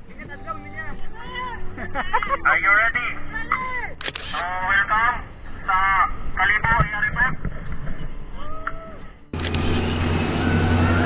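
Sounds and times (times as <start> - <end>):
men talking: 0.0 - 3.8, 4.4 - 7.4.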